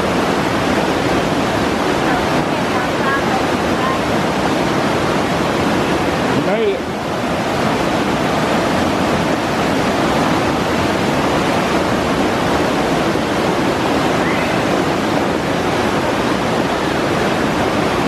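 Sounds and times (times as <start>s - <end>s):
river rapids rushing: 0.0s - 18.0s.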